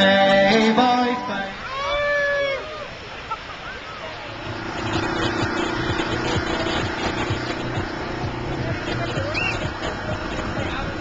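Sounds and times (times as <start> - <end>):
outdoor background noise: 0.0 - 11.0
steady droning hum: 2.5 - 11.0
low pulsing: 4.3 - 11.0.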